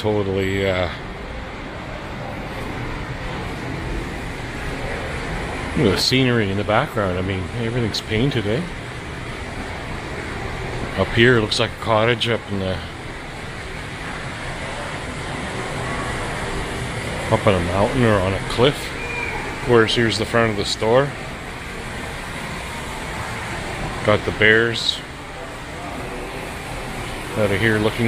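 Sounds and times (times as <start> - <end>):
shopping mall background hum: 0.0 - 28.0
store interior rushing noise: 0.0 - 28.0.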